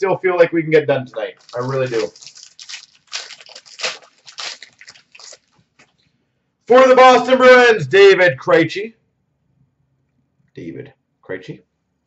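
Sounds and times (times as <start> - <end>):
wrapper crinkling and rustling: 1.4 - 6.0.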